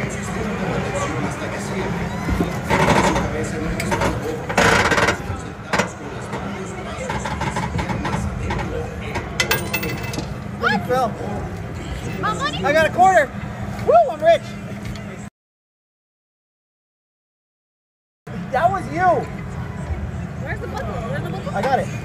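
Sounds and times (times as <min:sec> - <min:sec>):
coin clinking: 0:09.4 - 0:10.3.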